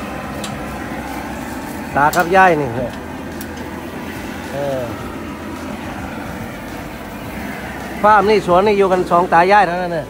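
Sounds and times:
propane torch hissing: 0:00.0 - 0:10.0.

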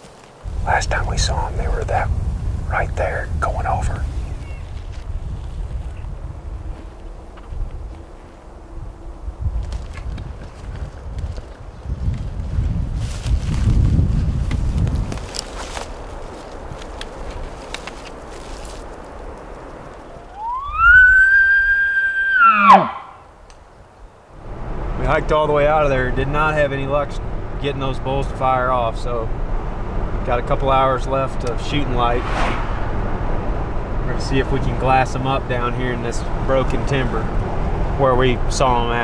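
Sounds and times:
elk bugling: 0:19.9 - 0:23.3.

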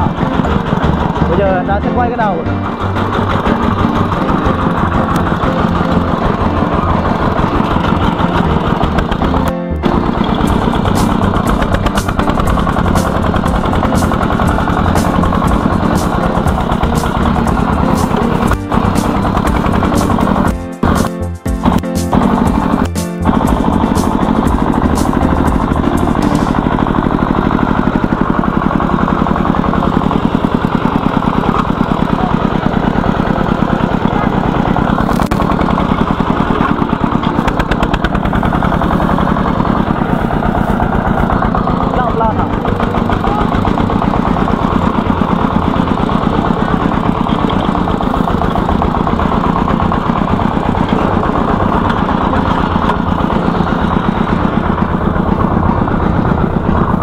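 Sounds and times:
diesel engine idling: 0:00.0 - 0:57.0.

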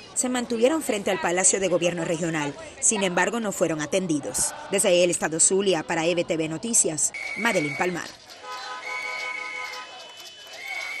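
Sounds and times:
street crowd noise: 0:00.0 - 0:11.0
whistle blasts: 0:07.1 - 0:11.0.

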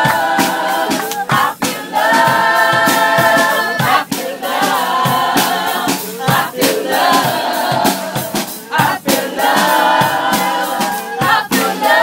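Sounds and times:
gospel choir singing with music: 0:00.0 - 0:12.0.

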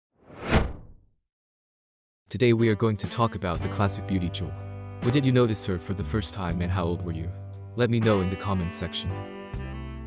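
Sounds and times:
whoosh: 0:00.2 - 0:01.0.

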